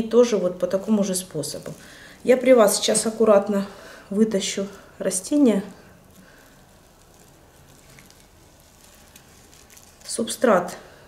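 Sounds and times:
plastic pot crinkling: 0.0 - 11.0.

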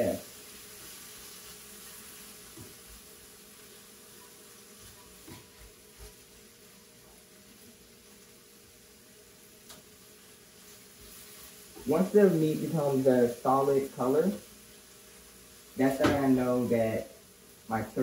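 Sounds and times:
faint steady hum: 0.0 - 18.0
meat sizzling in a skillet: 0.0 - 18.0
spatula stirring meat: 0.7 - 6.4.

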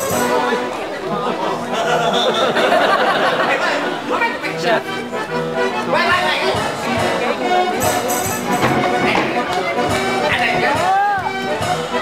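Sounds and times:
background music: 0.0 - 12.0
voices chattering: 0.0 - 12.0.

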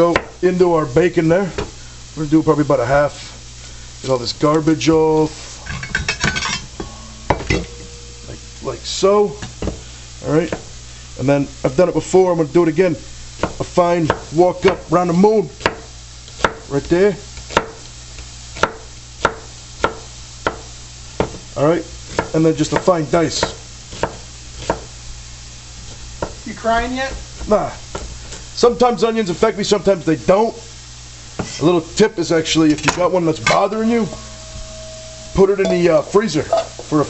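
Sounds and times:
steady low hum: 0.0 - 15.0, 32.1 - 37.0
bacon sizzling in a pan: 0.0 - 37.0.

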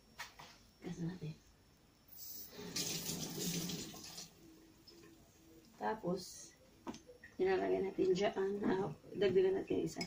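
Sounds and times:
tap water running into sink: 2.7 - 4.3.

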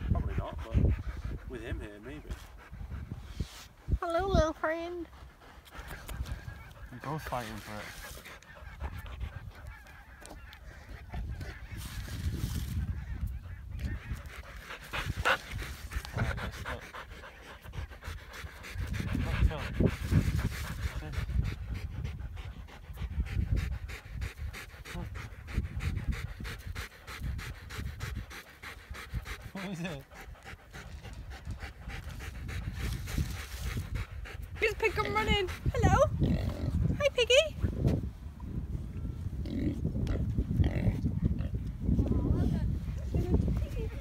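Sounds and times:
dog panting: 0.0 - 11.8, 12.7 - 37.8, 42.5 - 44.0.

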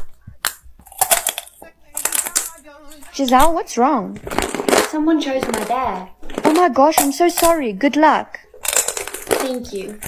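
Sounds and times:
hard candy crunching: 0.0 - 7.8, 8.5 - 10.0.

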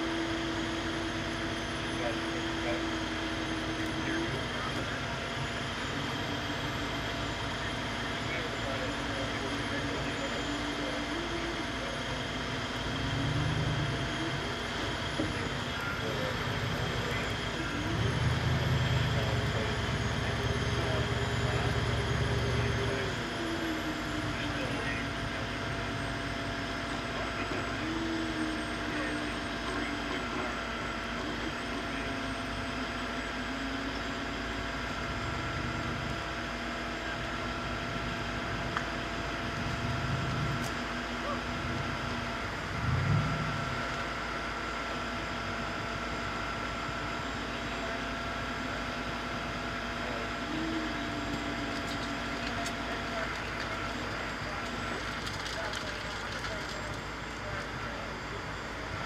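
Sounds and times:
tow truck engine running: 0.0 - 59.0
winch cable dragging car: 0.0 - 59.0.

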